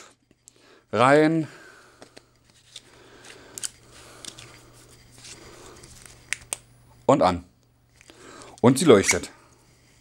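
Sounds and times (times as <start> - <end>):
flashlight handling rustling: 2.0 - 6.6.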